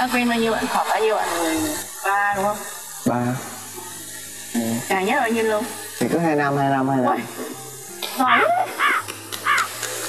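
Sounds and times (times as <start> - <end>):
crow cawing: 8.8 - 9.7.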